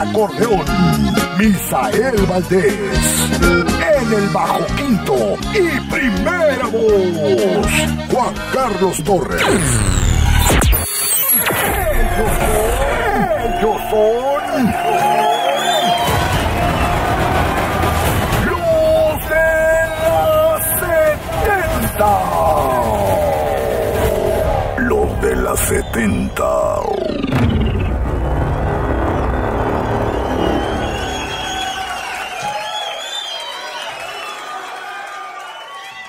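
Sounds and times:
crowd cheering: 3.2 - 8.5, 11.3 - 36.0
deep bass rumble: 19.2 - 32.1
dense noisy swell with deep rumble: 25.6 - 32.0.

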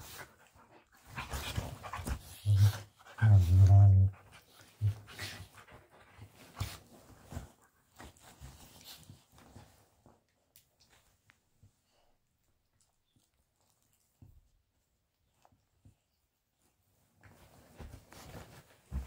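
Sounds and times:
dog growling: 2.0 - 4.3
dogs scuffling: 17.2 - 19.0.

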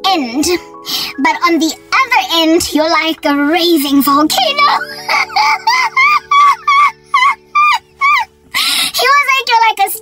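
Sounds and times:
woman laughing: 4.6 - 8.3.

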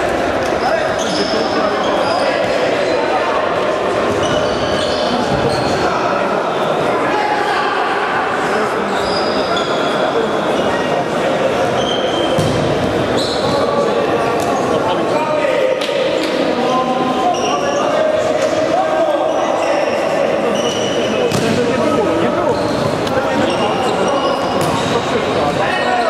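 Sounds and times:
shoe squeaks: 0.6 - 2.3, 4.1 - 5.9, 8.9 - 11.0, 11.7 - 12.5, 13.1 - 13.8, 17.2 - 18.0, 19.2 - 21.4, 22.3 - 25.0.

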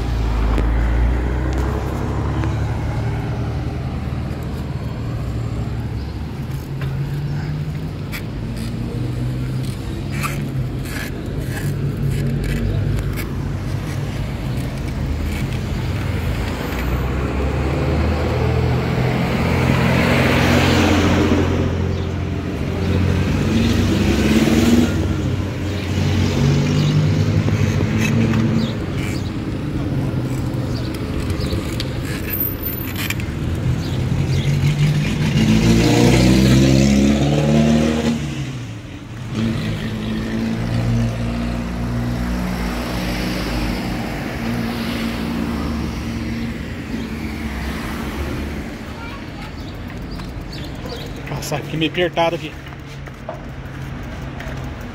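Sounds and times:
street traffic: 0.0 - 54.9
vehicle accelerating past: 34.3 - 38.7.

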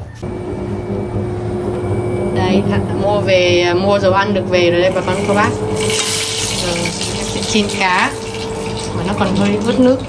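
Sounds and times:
induction cooktop humming: 0.0 - 10.0
thin high tone: 0.2 - 10.0.

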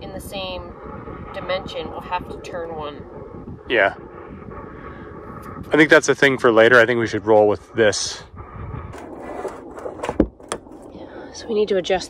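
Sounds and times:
low steady rumbling: 0.0 - 12.0.

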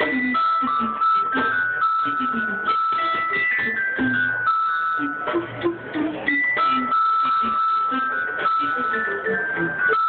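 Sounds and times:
recorders and bassoon ensemble: 0.0 - 10.0.

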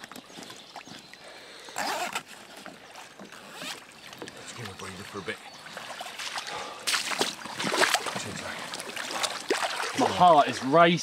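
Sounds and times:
water splashing and sloshing: 0.0 - 11.0
water pouring from wet mesh: 5.8 - 11.0.

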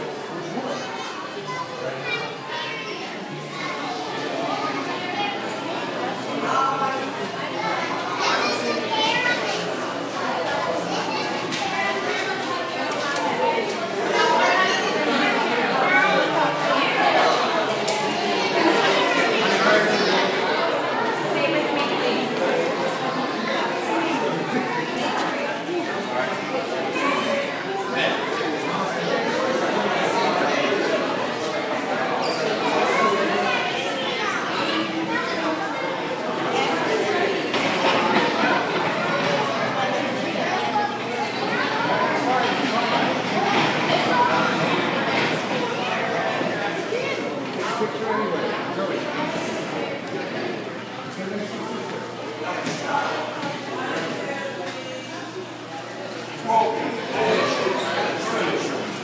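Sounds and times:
children talking and calling out: 0.0 - 59.0
general chatter of people: 0.0 - 59.0.

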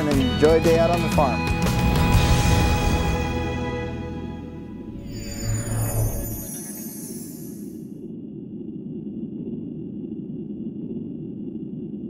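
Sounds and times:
low rumbling drone: 1.7 - 11.5
faint thin high tones: 4.9 - 7.9.

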